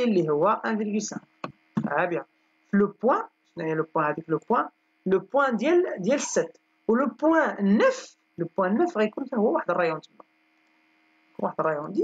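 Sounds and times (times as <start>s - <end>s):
person talking: 0.0s - 10.4s, 11.3s - 12.0s
faint electrical hum: 0.0s - 12.0s.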